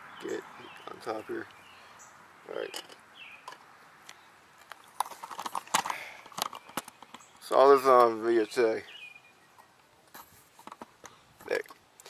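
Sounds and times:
camera handling clicks and knocks: 4.6s - 7.3s.

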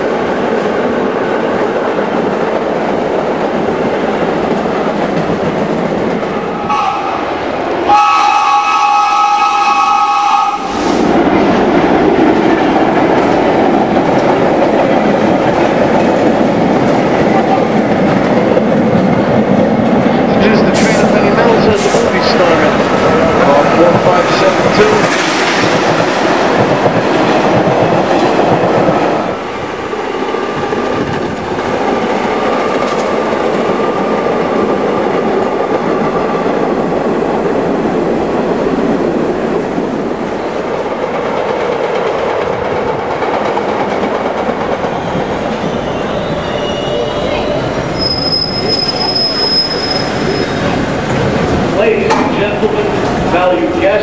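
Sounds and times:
subway train wheels rolling: 0.0s - 54.0s
high-pitched squeal: 45.7s - 50.8s.

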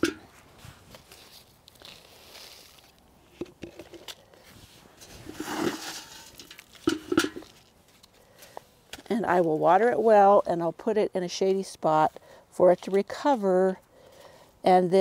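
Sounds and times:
soil rustling and crackling: 0.0s - 10.9s.

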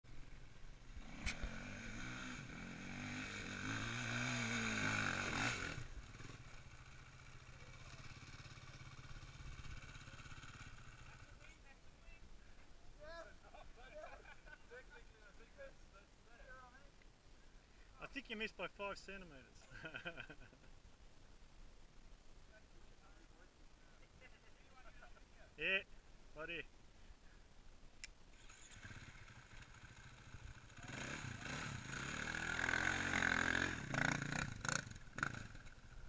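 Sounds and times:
dirt bike engine revving: 1.0s - 11.2s, 28.4s - 35.8s.

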